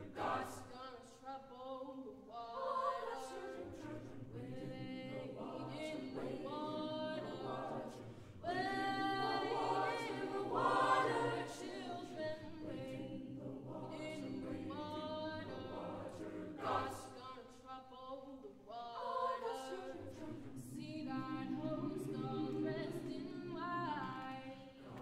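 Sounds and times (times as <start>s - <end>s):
choir singing sustained notes: 0.0s - 25.0s.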